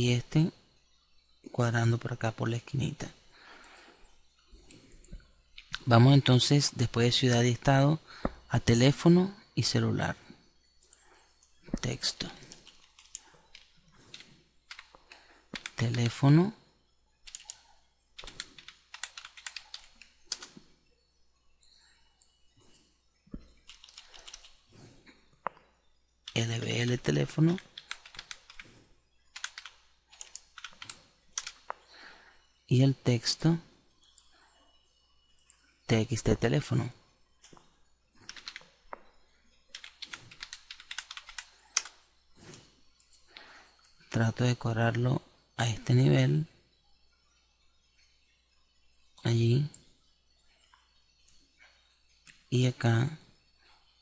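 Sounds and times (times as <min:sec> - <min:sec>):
typing on computer keyboard: 0:12.3 - 0:16.1, 0:17.2 - 0:17.6, 0:18.2 - 0:20.6, 0:23.6 - 0:24.6, 0:27.4 - 0:28.6, 0:29.3 - 0:31.8, 0:38.2 - 0:38.7, 0:39.7 - 0:42.0.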